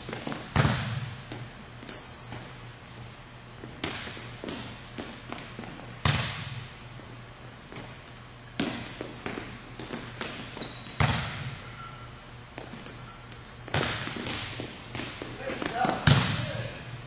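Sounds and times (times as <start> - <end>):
sneaker squeaks on court floor: 1.8 - 2.7, 3.4 - 5.2, 8.4 - 16.9
volleyball smacks: 6.0 - 6.6, 15.7 - 16.6.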